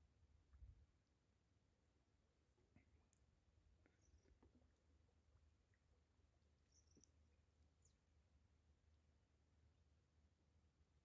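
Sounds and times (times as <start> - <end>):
faint outdoor hum: 0.0 - 11.0
faint high chirp: 6.6 - 8.1.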